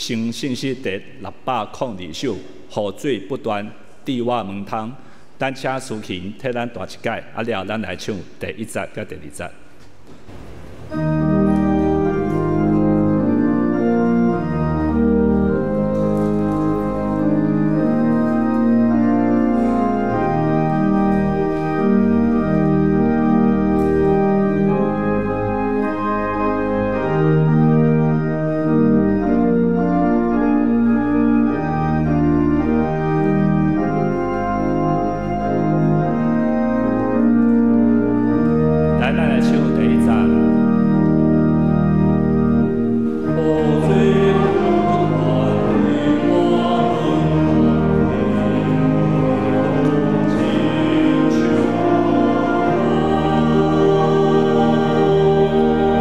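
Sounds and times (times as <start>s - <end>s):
organ playing hymn chords: 0.0s - 56.0s.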